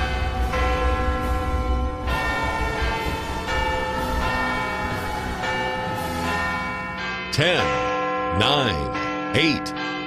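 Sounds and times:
bells ringing: 0:00.0 - 0:10.0.

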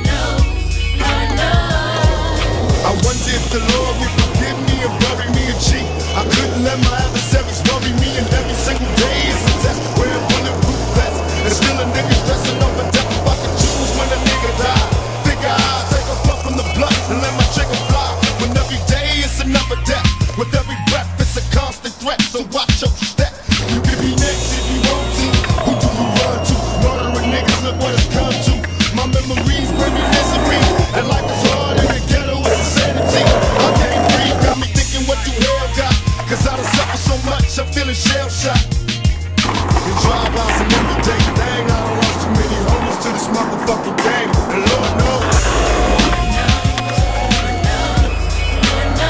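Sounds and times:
hip hop music with heavy bass: 0:00.0 - 0:49.0
skateboard clacks: 0:00.0 - 0:49.0
skateboard wheels rolling on concrete: 0:00.0 - 0:49.0.

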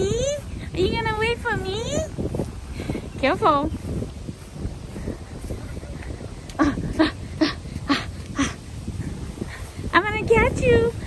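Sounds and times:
person speaking: 0:00.0 - 0:02.1.

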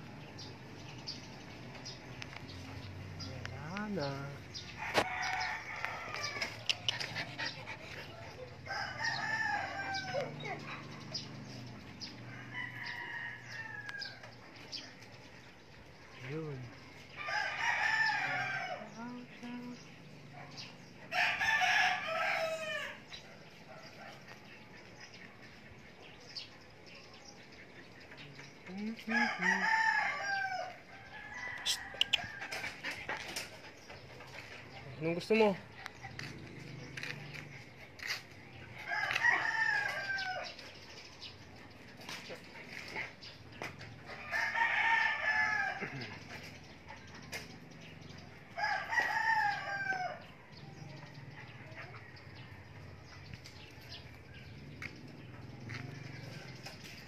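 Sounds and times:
roosters crowing: 0:04.5 - 0:14.8, 0:17.1 - 0:19.0, 0:20.6 - 0:23.2, 0:28.9 - 0:34.3, 0:36.0 - 0:41.3, 0:42.9 - 0:57.0.

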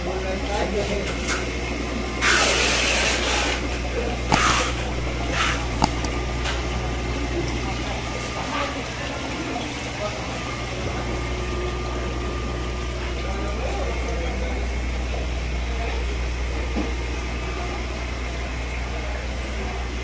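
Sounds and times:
sharp clicks: 0:04.3 - 0:06.5.

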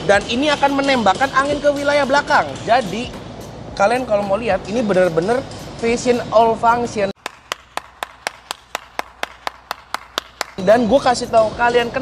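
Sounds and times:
person clapping: 0:07.2 - 0:10.6.

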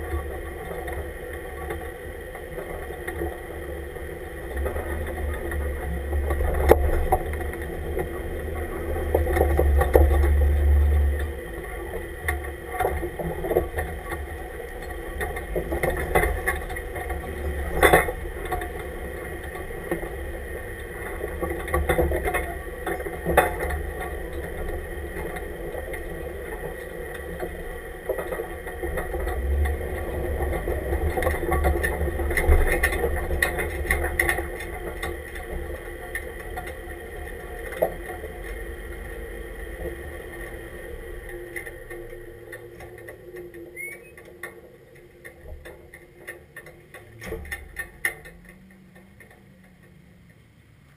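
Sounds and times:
chassis and tyres knocking: 0:00.0 - 0:50.5
truck engine at low speed: 0:00.0 - 0:50.9.

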